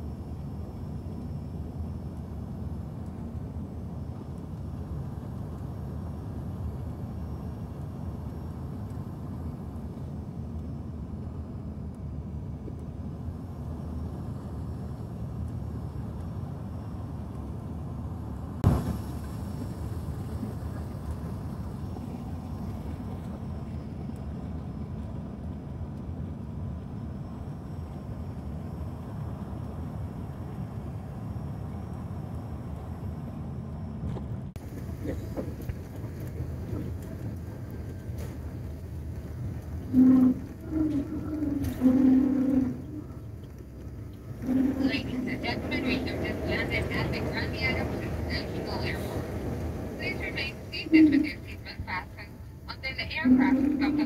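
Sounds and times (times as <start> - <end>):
airliner cabin rumble: 0.0 - 54.0.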